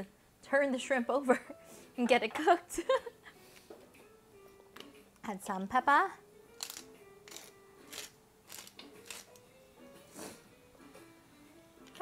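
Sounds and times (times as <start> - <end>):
quiet background music: 0.0 - 12.0
pepper grinder grinding: 6.6 - 9.4.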